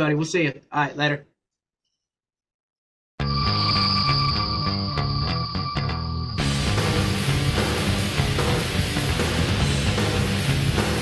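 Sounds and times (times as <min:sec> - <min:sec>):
heavy metal music: 0:03.2 - 0:11.0.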